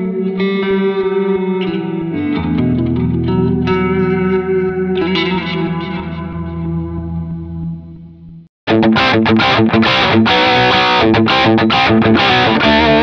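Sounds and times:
distorted guitar rhythmic chords: 0:00.0 - 0:13.0
electric guitar chords ringing: 0:00.0 - 0:13.0.

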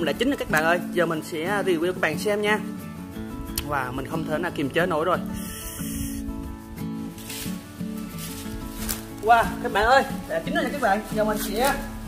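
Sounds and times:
acoustic guitar music: 0:00.0 - 0:12.0
faint fire crackles: 0:06.4 - 0:12.0.

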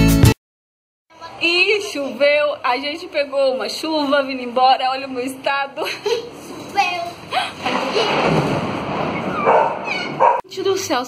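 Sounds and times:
rumbling thunderclap: 0:07.7 - 0:10.4.

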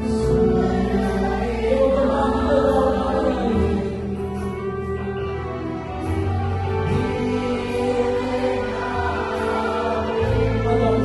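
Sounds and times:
congregation singing: 0:00.0 - 0:11.0
musical backing: 0:00.0 - 0:11.0.

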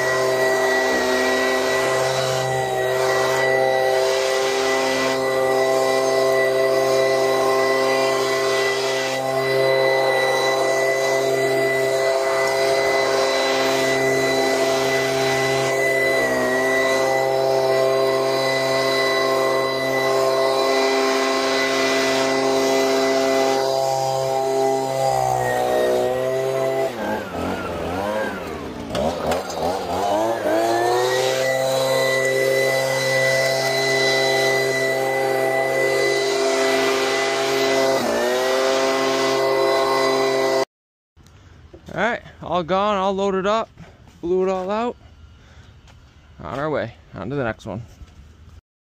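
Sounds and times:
leaf blower running: 0:00.0 - 0:40.7.

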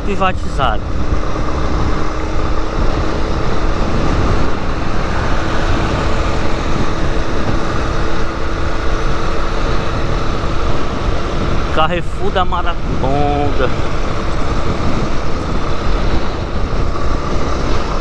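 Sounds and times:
motorcycle engine cruising: 0:00.0 - 0:18.0
wind rush: 0:00.0 - 0:18.0.

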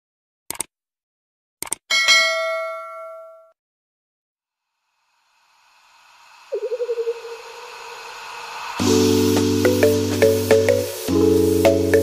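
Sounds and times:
bell-like notification ding: 0:01.9 - 0:03.6
hissing whoosh: 0:05.3 - 0:12.0.

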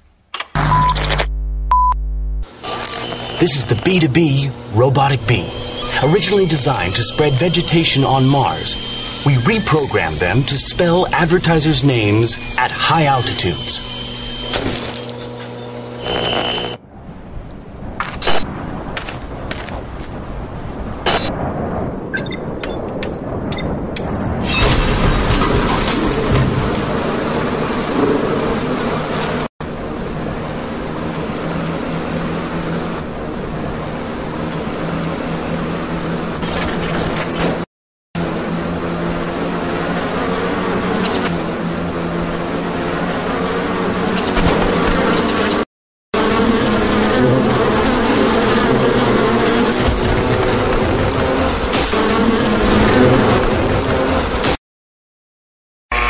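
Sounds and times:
bees buzzing: 0:02.5 - 0:15.0, 0:38.2 - 0:45.6, 0:46.2 - 0:54.5.

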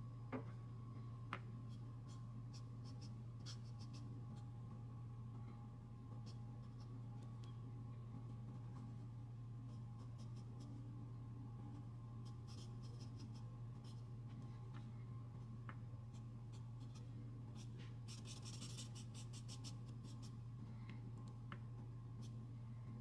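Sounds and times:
steady low hum: 0:00.0 - 0:23.0
drawing tool scratching paper: 0:17.6 - 0:20.3.

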